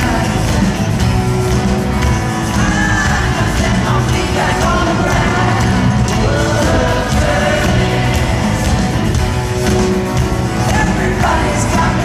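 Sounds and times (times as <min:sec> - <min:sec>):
live rock band playing: 0:00.0 - 0:12.0
person singing: 0:02.2 - 0:08.6, 0:10.6 - 0:12.0.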